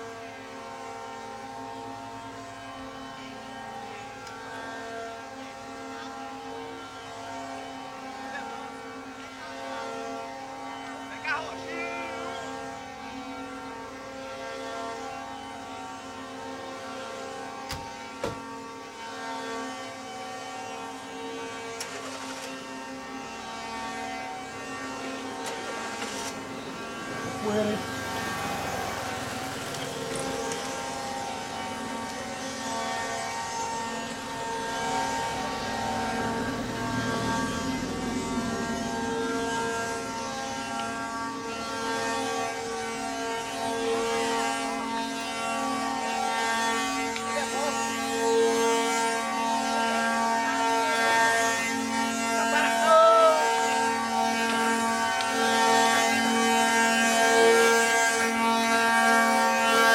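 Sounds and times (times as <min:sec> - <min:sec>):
wooden cart axles whining: 0:21.6 - 0:52.8, 0:53.4 - 0:59.9.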